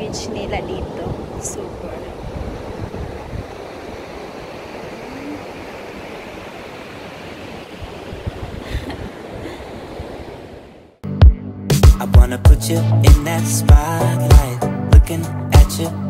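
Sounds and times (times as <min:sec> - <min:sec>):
wind buffeting microphone: 0:00.0 - 0:10.8
surf on beach: 0:00.0 - 0:11.0
wind: 0:00.0 - 0:11.0.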